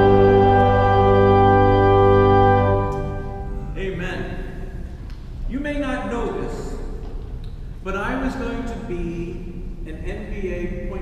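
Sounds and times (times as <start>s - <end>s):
low steady hum: 0.0s - 11.0s
man speaking: 3.5s - 4.7s, 5.5s - 6.9s, 7.8s - 11.0s.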